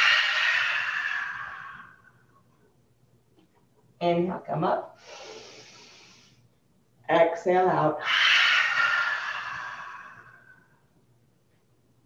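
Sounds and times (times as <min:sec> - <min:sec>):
woman exhaling forcefully: 0:08.0 - 0:10.6.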